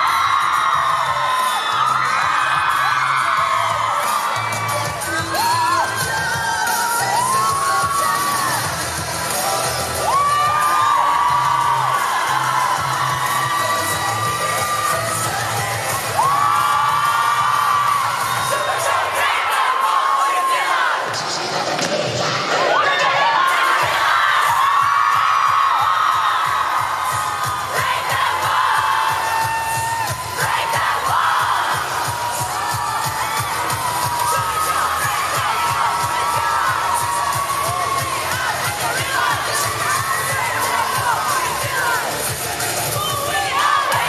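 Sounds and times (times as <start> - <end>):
dance track through speakers: 0.0 - 19.8, 20.5 - 44.0
crowd screaming and cheering: 0.0 - 44.0.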